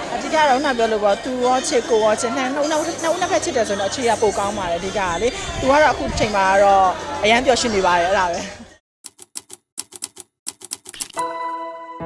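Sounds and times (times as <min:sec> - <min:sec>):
music: 0:00.0 - 0:08.8, 0:11.2 - 0:12.0
typewriter-like key clicks: 0:09.1 - 0:11.2.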